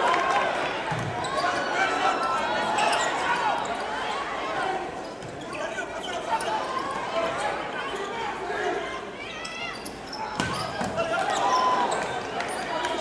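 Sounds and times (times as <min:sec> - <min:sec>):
sneakers squeaking on court: 0:02.8 - 0:03.9, 0:09.3 - 0:12.6.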